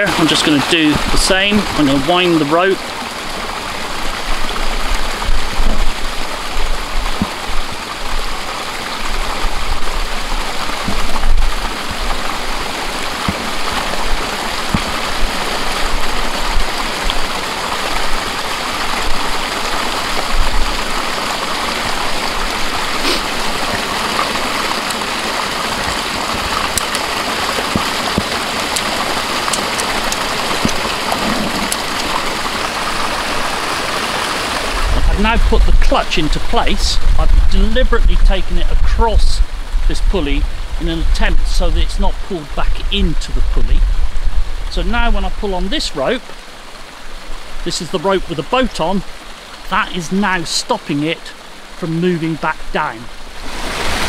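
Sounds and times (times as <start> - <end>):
stream water rushing: 0.0 - 54.0
low rumbling bumps: 34.7 - 41.8.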